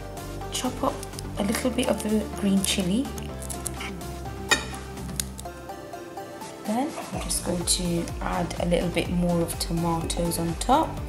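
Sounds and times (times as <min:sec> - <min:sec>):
background music: 0:00.0 - 0:11.0
knife cutting chilli clicks: 0:03.1 - 0:04.0, 0:05.1 - 0:05.5.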